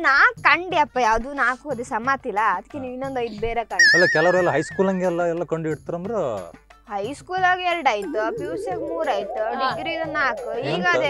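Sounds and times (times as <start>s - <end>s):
woman talking animatedly: 0.0s - 3.9s, 6.9s - 11.0s
high wavering tone: 3.8s - 5.5s, 7.5s - 11.0s.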